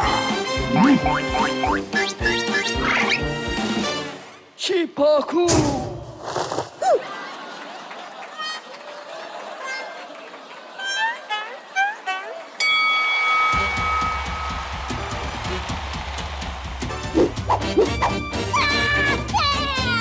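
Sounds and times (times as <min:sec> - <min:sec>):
upbeat music with heavy bass beat: 0:00.0 - 0:02.5
bell-like ring: 0:12.6 - 0:15.0.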